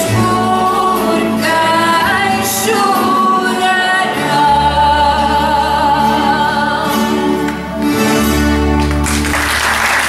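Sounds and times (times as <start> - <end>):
guitar orchestra: 0.0 - 10.0.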